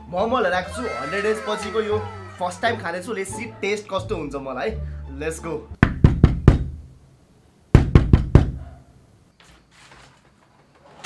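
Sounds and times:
knocking on a wooden door: 0:05.8 - 0:06.7, 0:07.8 - 0:08.6.

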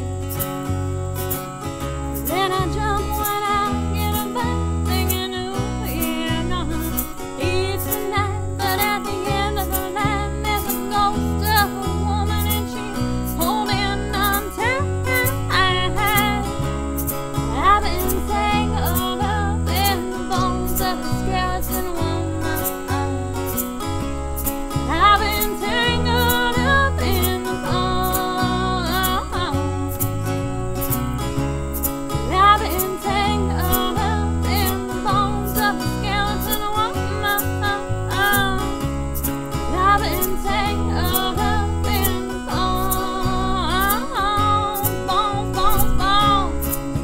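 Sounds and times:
acoustic guitars strummed: 0:00.0 - 0:47.0
bass line: 0:00.0 - 0:47.0
person singing: 0:02.2 - 0:23.7, 0:24.4 - 0:31.0, 0:32.2 - 0:38.8, 0:39.5 - 0:47.0.

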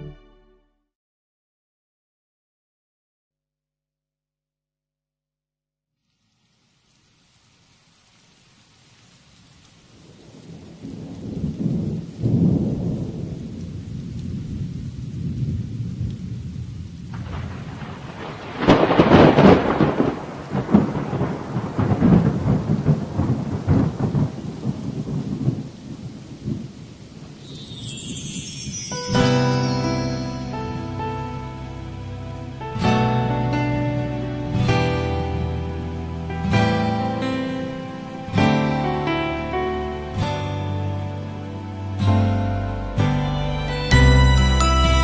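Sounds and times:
soft song intro music: 0:00.0 - 0:00.9, 0:27.4 - 0:45.0
steady rain: 0:06.0 - 0:45.0
rolling thunder: 0:10.0 - 0:27.8.

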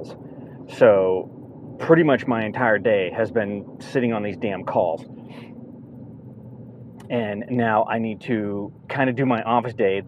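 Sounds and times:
car engine rumble: 0:00.0 - 0:10.0
road noise: 0:00.0 - 0:10.0
short breath: 0:05.2 - 0:05.6.

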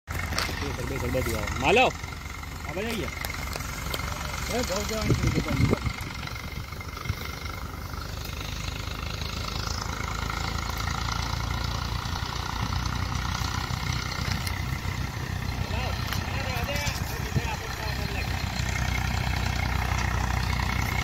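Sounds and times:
diesel engine droning: 0:00.1 - 0:21.0
thresher running: 0:00.2 - 0:21.0.

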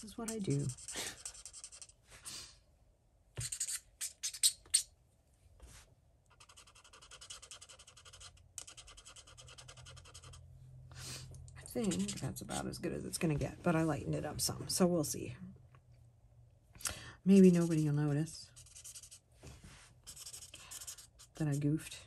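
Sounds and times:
pen nib scrubbing on paper: 0:00.0 - 0:02.0, 0:03.4 - 0:04.6, 0:06.3 - 0:10.4, 0:11.6 - 0:12.7, 0:17.4 - 0:19.2, 0:20.0 - 0:21.7.

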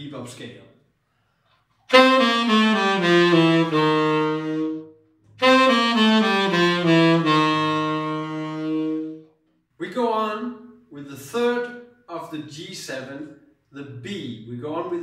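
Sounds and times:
tenor saxophone scale: 0:01.9 - 0:09.4.

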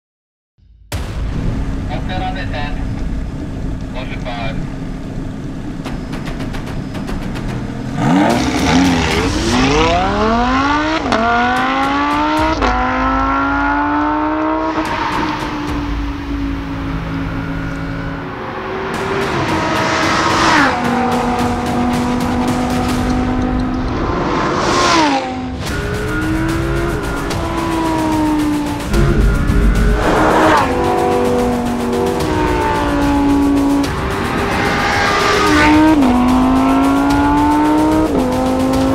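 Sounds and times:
sports car engine revving: 0:03.0 - 0:38.9.

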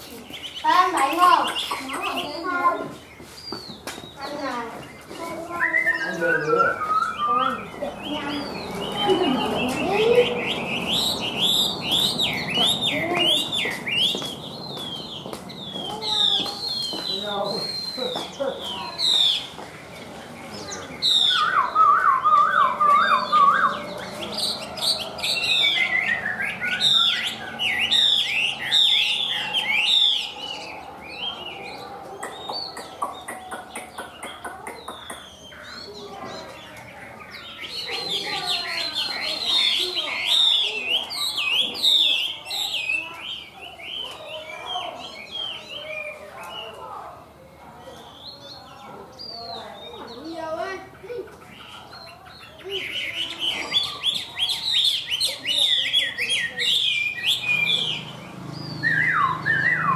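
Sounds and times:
bird singing whistled notes: 0:00.2 - 0:19.6, 0:20.4 - 0:36.6, 0:52.8 - 0:59.9.

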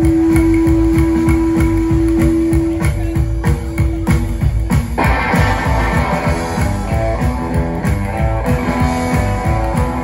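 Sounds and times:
fast driving bass beat: 0:00.0 - 0:10.0
live band music through pa: 0:00.0 - 0:10.0.

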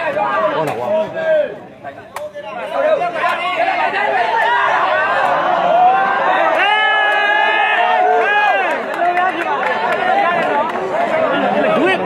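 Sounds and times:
crowd chattering and calling out: 0:00.0 - 0:12.0.

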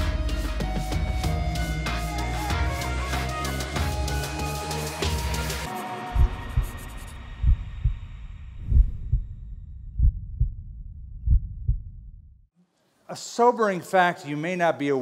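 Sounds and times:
loud music: 0:00.0 - 0:07.2
heartbeat thumps: 0:06.1 - 0:12.4.

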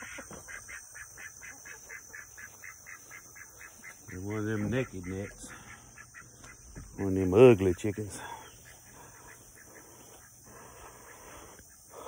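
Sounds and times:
hens clucking quietly: 0:00.0 - 0:12.0.

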